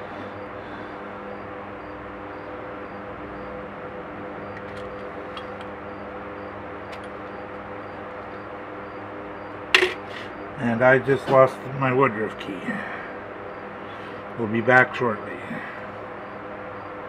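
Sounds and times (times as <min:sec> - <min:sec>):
machine hum: 0:00.0 - 0:17.0.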